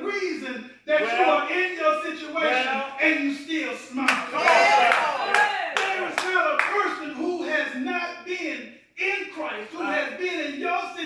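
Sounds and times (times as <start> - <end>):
man speaking: 0.0 - 4.9, 5.8 - 11.0
hand claps: 4.1 - 6.8.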